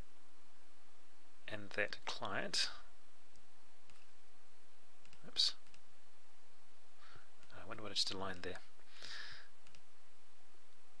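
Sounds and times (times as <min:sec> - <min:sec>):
computer mouse clicks: 0:03.3 - 0:04.1, 0:05.0 - 0:05.8, 0:09.6 - 0:09.9
breathy sound: 0:08.9 - 0:09.5.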